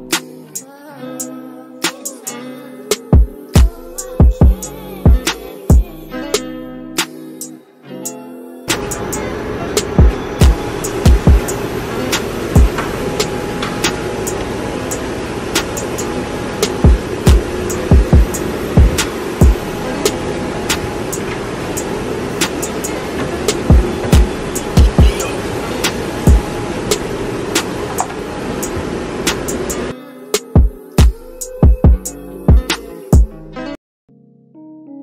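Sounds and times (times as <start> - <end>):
machine hum: 8.7 - 29.9.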